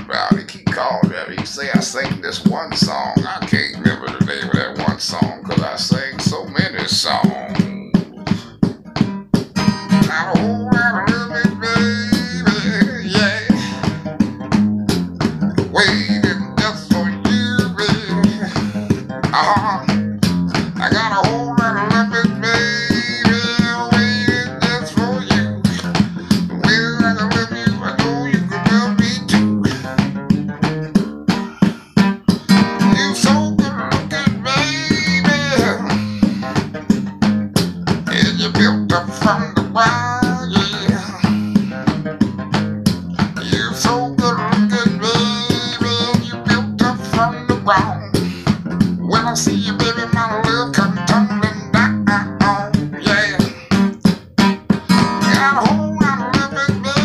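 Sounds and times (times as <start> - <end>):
man singing: 0.0 - 8.7, 9.9 - 14.1, 15.6 - 30.0, 32.4 - 36.6, 38.1 - 41.9, 43.2 - 53.9, 54.9 - 57.0
acoustic guitar strumming blues: 0.0 - 57.0.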